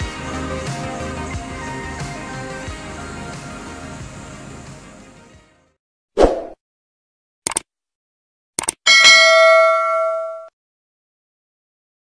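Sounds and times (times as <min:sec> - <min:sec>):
mouse clicks: 0:08.6 - 0:08.8
bright bell ding: 0:08.9 - 0:10.5.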